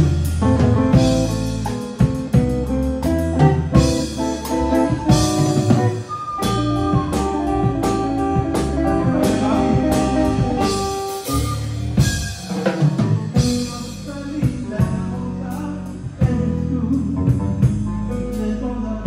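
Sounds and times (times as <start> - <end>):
drum kit steady beat: 0.0 - 18.7
electric guitar melody: 0.0 - 19.0.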